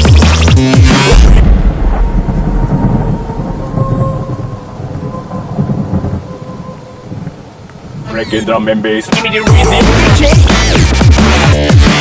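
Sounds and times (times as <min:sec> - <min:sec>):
thunder rumbling: 0:01.1 - 0:08.8
steady rain: 0:01.5 - 0:12.0.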